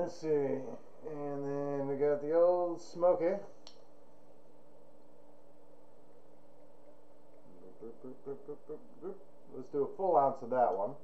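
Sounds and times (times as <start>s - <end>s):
faint hum and hiss: 0.0s - 11.0s.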